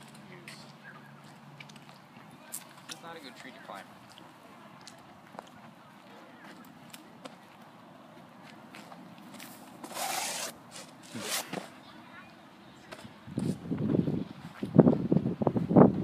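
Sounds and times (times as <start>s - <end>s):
faint footsteps and scuffs: 0.0s - 11.8s, 12.8s - 16.0s
scraping at tree trunk: 9.3s - 11.8s.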